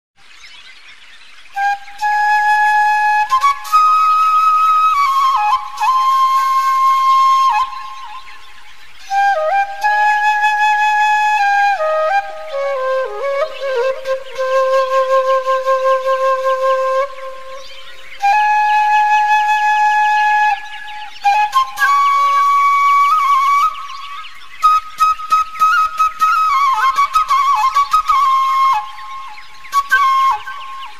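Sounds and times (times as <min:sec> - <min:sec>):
birds chirping: 0:00.2 - 0:30.9
flute playing slow melody: 0:01.5 - 0:30.9.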